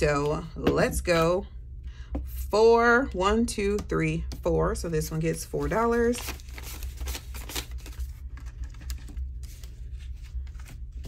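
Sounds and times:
paper bills rustling: 5.5s - 11.0s.

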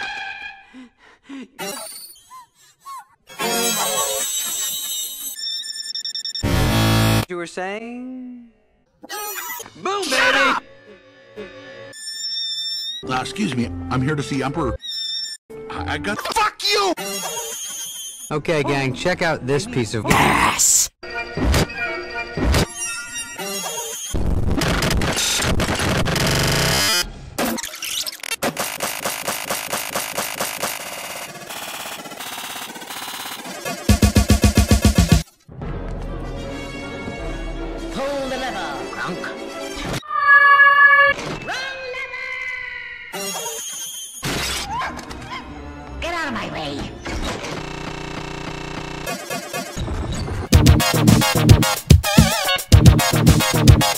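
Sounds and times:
rapid stuttering sound loop: 28.5s - 35.2s, 47.7s - 53.9s.

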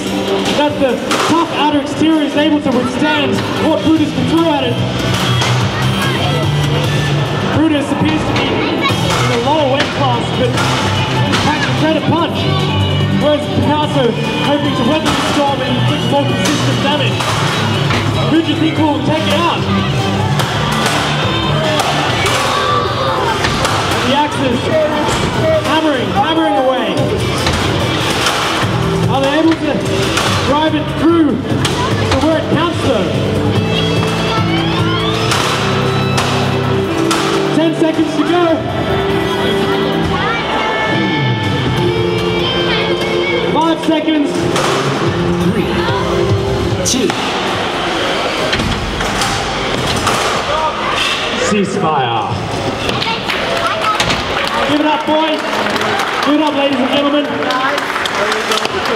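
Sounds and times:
background music: 0.0s - 58.9s
crowd noise: 0.0s - 58.9s.

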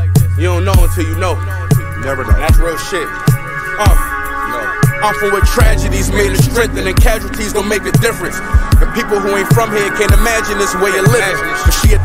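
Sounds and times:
sustained backing: 5.5s - 10.8s
heavy low bass note: 5.6s - 10.0s.

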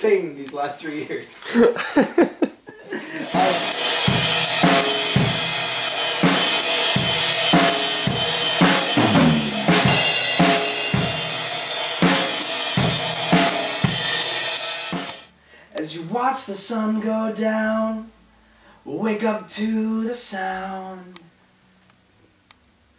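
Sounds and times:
drum kit steady beat: 3.0s - 15.3s
cymbals and hi-hat wash: 3.2s - 15.3s
bass drum hits: 3.3s - 14.2s.

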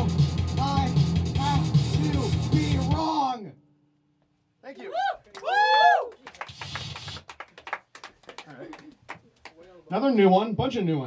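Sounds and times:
audience clapping: 5.2s - 9.8s.

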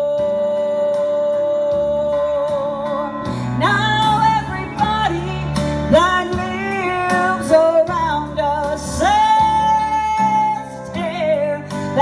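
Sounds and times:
guitar accompaniment: 0.0s - 12.0s
woman singing lead: 0.0s - 12.0s.

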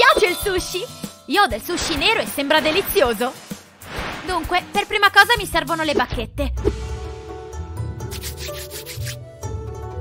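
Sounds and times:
background music: 0.0s - 10.0s
chopsticks scraping together: 8.1s - 9.2s.

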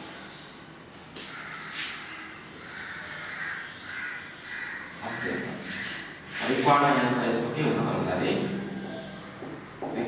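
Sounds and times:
crows cawing: 1.2s - 6.2s.

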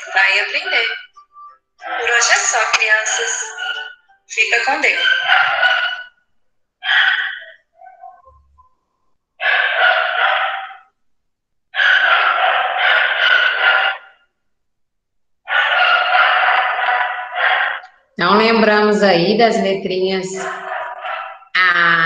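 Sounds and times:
animal calling harshly: 4.7s - 6.2s, 6.8s - 8.2s, 9.4s - 10.9s, 11.8s - 14.2s, 15.5s - 17.9s.

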